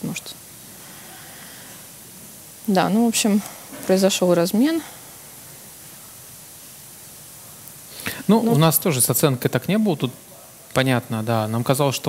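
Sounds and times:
faint microphone hiss: 0.0 - 12.0.

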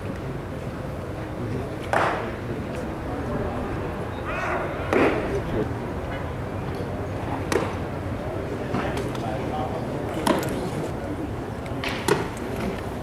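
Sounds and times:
spectators chattering: 0.0 - 13.0.

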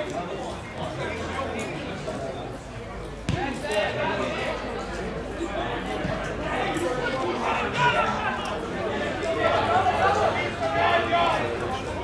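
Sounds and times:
players calling out: 5.4 - 12.0.

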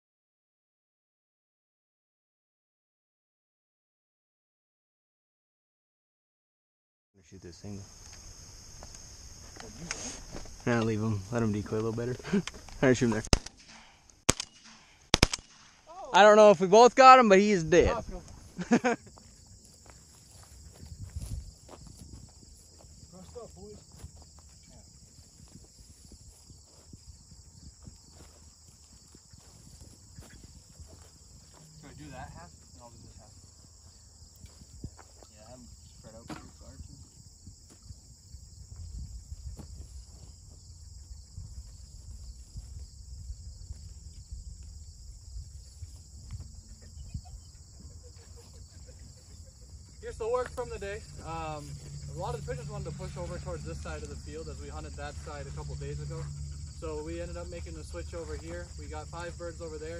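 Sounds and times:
crickets chirping: 7.2 - 59.9
rustling and soft thuds: 19.2 - 38.0, 38.6 - 40.8.

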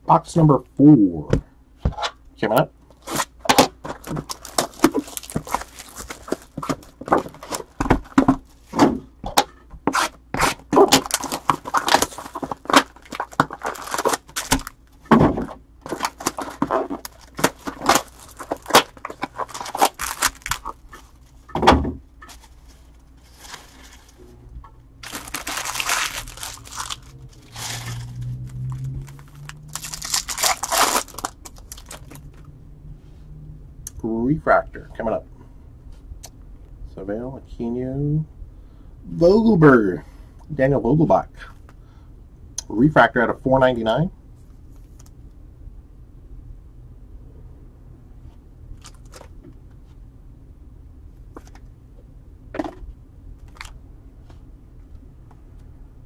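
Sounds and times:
foil pack crinkling: 2.9 - 8.4, 9.9 - 21.4, 22.2 - 24.2, 25.0 - 32.4, 48.8 - 49.3.

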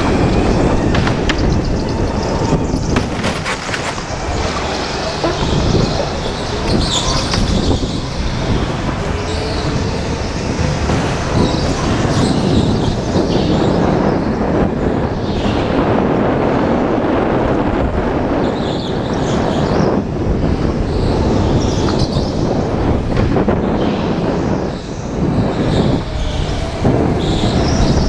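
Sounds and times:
tyre noise on concrete: 2.5 - 8.0.

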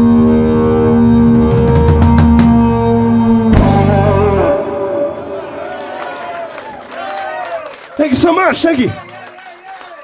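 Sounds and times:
blues-rock band playing live: 0.0 - 5.0.

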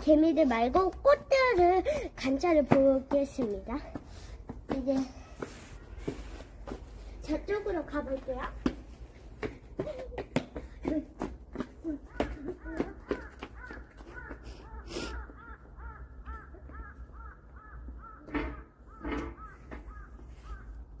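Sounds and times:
footsteps on pavement: 0.0 - 18.2.

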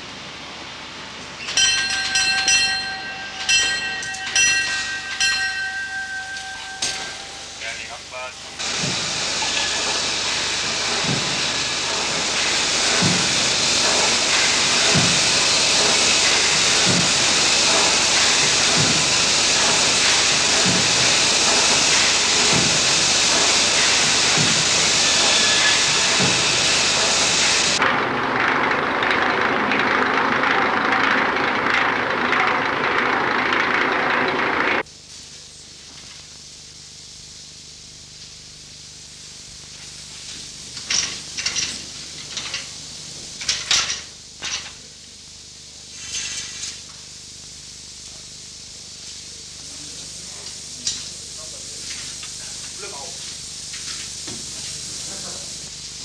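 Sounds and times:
steam hissing: 1.0 - 27.8, 34.8 - 56.0
signal bell ringing: 1.4 - 8.6
steam engine thudding: 1.4 - 27.8
low rushing noise of hoist: 1.4 - 34.8.

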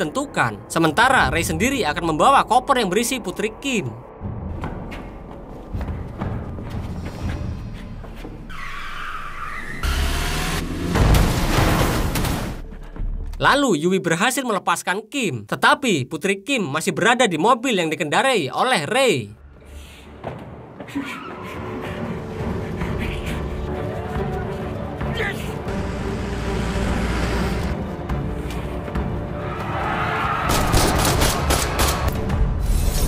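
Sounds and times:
background music: 0.0 - 33.0
car tyres screeching: 8.5 - 11.5
car engine speeding off: 9.6 - 12.2.

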